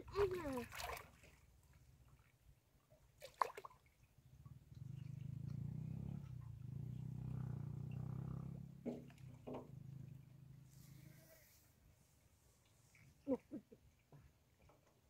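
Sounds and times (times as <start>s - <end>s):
short water splashes: 0.0s - 2.4s, 3.1s - 4.1s
hands moving in muddy water: 0.1s - 1.8s.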